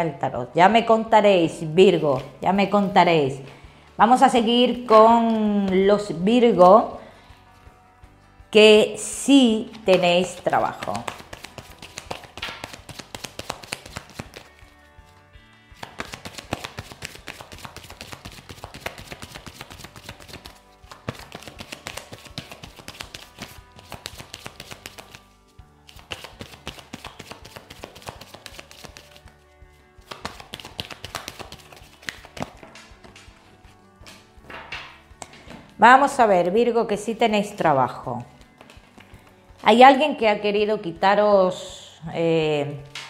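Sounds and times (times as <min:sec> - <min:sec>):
cards being shuffled by hand: 0:01.9 - 0:03.0, 0:09.7 - 0:35.7, 0:38.3 - 0:39.6.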